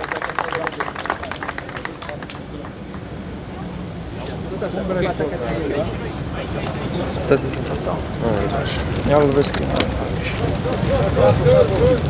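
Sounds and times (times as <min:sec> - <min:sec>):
crowd applauding: 0:00.0 - 0:03.1
people talking: 0:00.0 - 0:12.0.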